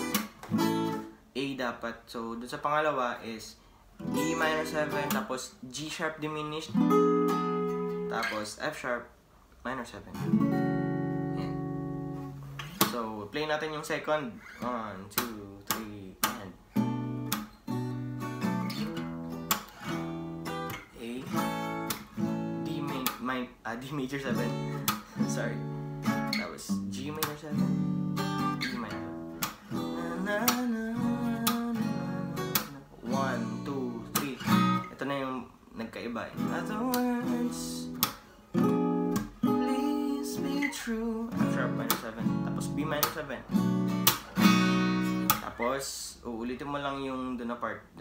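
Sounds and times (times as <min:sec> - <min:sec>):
acoustic guitar strumming chords: 0:00.0 - 0:01.2, 0:04.0 - 0:05.4, 0:06.3 - 0:08.6, 0:10.1 - 0:13.2, 0:14.1 - 0:35.4, 0:36.1 - 0:45.7
acoustic guitar chord ringing: 0:04.0 - 0:05.2, 0:06.8 - 0:08.3, 0:10.2 - 0:12.8, 0:36.4 - 0:45.4.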